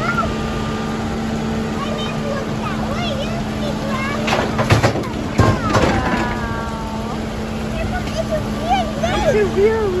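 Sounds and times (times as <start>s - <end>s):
engines idling: 0.0s - 10.0s
debris crashing into truck bed: 4.2s - 6.7s.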